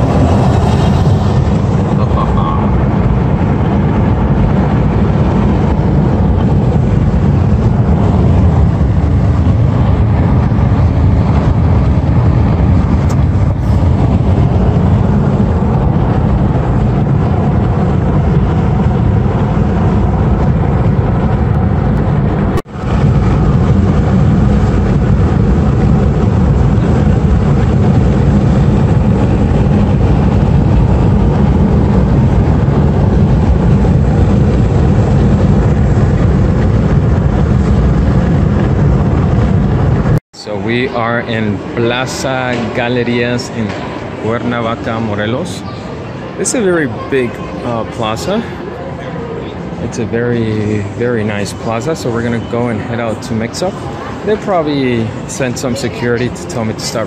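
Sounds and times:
road and engine rumble in car: 0.0s - 57.0s.

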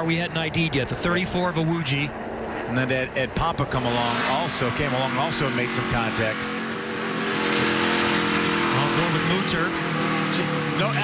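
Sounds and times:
race car engine running at speed: 2.1s - 11.0s.

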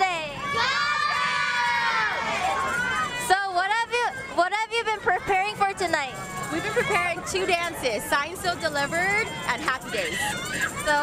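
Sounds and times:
children cheering: 0.4s - 11.0s.

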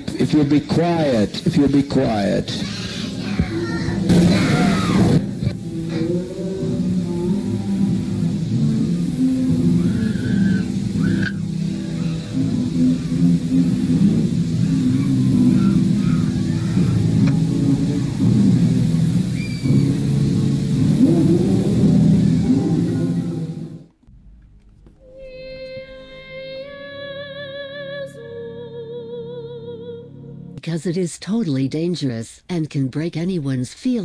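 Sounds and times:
distorted rumbling horror drone: 4.1s - 23.9s
falsetto opera singing: 4.1s - 23.9s, 25.0s - 30.6s.

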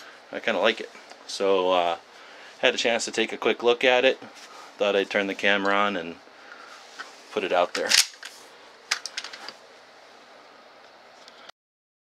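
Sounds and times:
faint room hiss: 0.0s - 11.5s.

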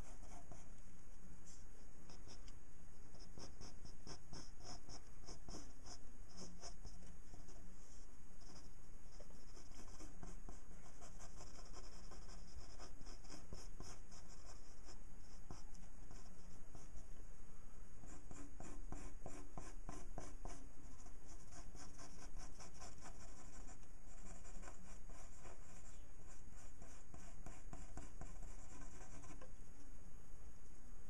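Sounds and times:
low steady hum: 0.0s - 31.0s
pen scratching on paper: 3.1s - 7.6s, 8.4s - 17.0s, 18.1s - 29.4s.

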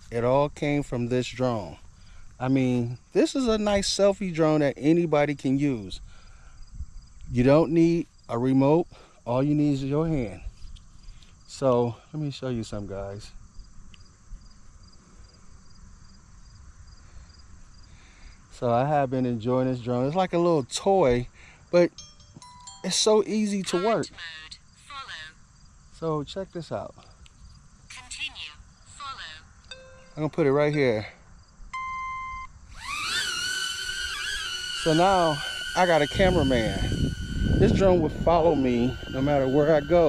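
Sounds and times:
insects chirping: 0.0s - 40.0s
drone beep: 31.7s - 32.5s
drone propellers whining and humming: 31.8s - 40.0s.

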